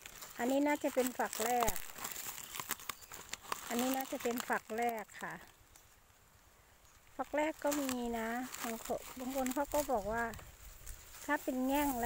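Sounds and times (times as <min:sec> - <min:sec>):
corn husks crinkling and tearing: 0:00.0 - 0:12.0.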